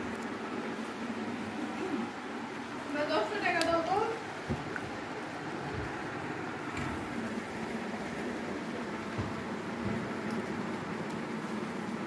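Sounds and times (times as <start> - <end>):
low background rumble and hiss: 0.0 - 12.0.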